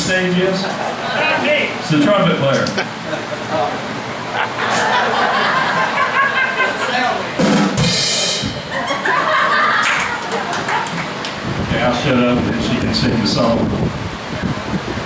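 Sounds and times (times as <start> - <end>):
people laughing and chattering: 0.0 - 7.5, 8.3 - 12.9
cymbal crash: 7.4 - 8.8.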